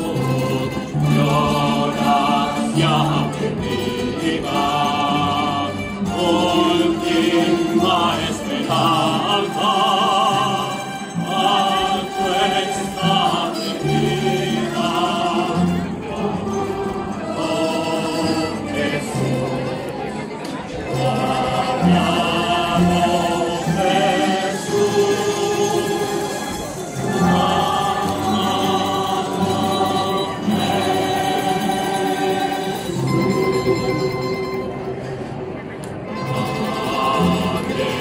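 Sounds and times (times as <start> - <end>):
choir singing a hymn: 0.0 - 34.8, 36.1 - 38.0
guitars and bandurrias playing: 0.0 - 38.0
plucked string ensemble: 0.0 - 38.0.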